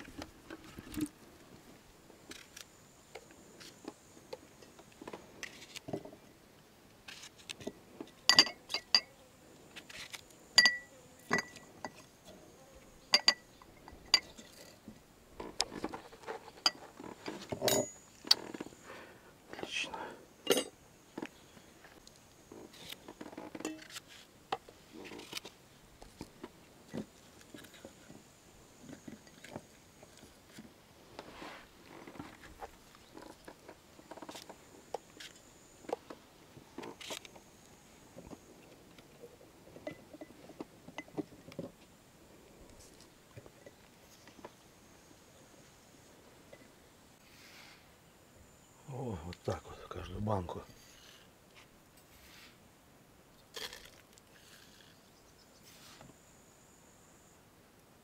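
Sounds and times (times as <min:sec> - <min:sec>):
glass jars clinking: 0:08.3 - 0:09.1, 0:10.6 - 0:12.0, 0:13.1 - 0:14.6, 0:20.5 - 0:20.7.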